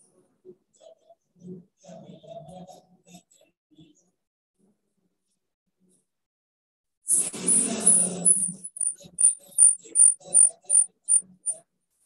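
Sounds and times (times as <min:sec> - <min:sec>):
choppy audio over video call: 0:00.0 - 0:04.2, 0:07.1 - 0:12.0.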